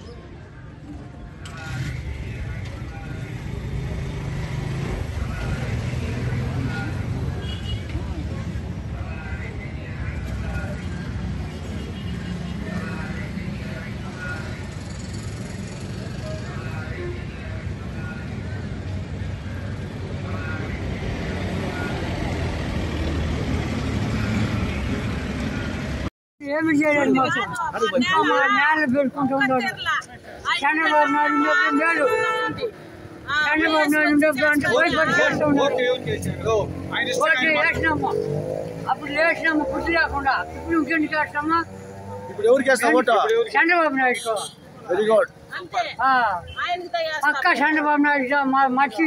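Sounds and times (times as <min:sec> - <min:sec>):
vehicle engines rumbling on road: 0:00.0 - 0:49.0
vehicle engine rumbling: 0:28.7 - 0:43.6.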